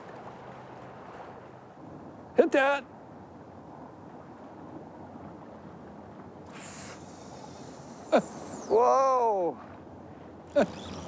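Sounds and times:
flowing river water: 0.0 - 11.0.

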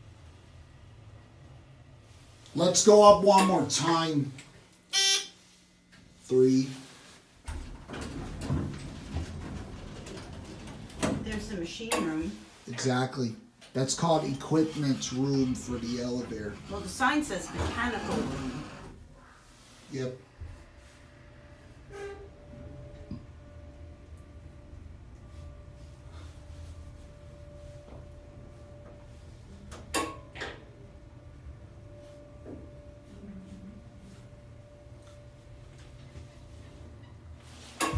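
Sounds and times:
elevator doors sliding: 7.5 - 12.4, 13.8 - 19.4, 33.8 - 37.9
elevator machinery humming: 7.6 - 12.4, 13.8 - 19.1, 20.3 - 37.9.

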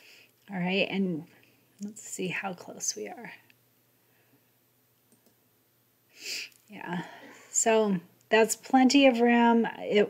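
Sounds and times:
computer mouse clicks: 5.1 - 5.4.

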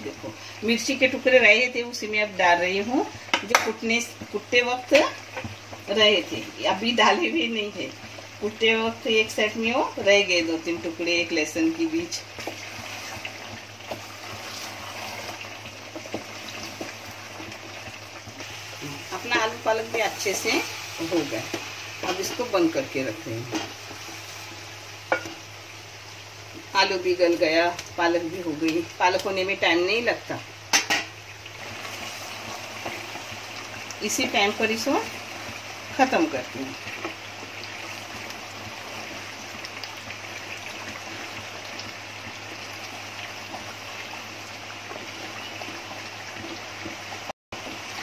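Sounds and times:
curry bubbling in a pot: 0.1 - 26.7, 30.4 - 48.0.

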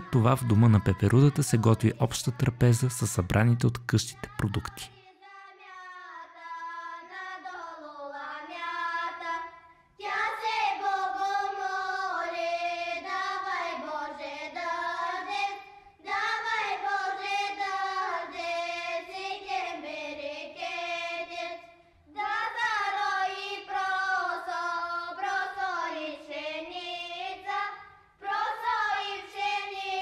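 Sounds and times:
girls singing in unison: 4.1 - 30.0.

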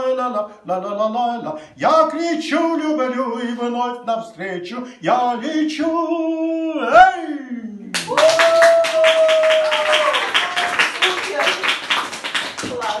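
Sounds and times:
man singing unaccompanied: 0.0 - 7.8
audience clapping: 7.9 - 13.0.

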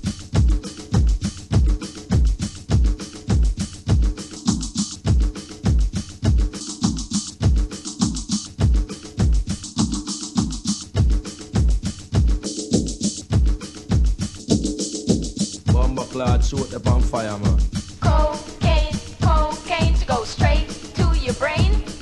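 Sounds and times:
electronic dance music: 14.5 - 22.0.

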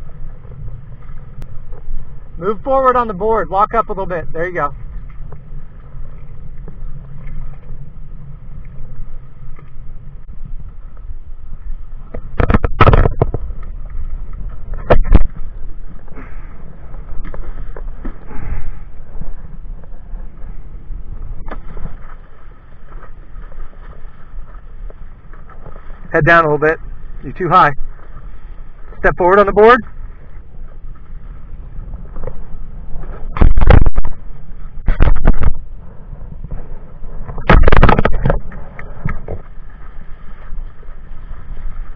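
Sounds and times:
wind buffeting microphone: 0.0 - 41.9.

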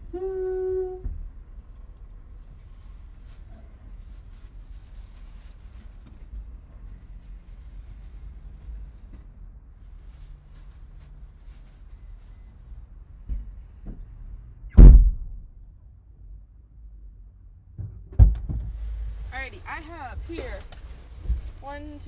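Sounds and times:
faint low rumble: 0.0 - 22.0
car door thump: 17.8 - 18.7.

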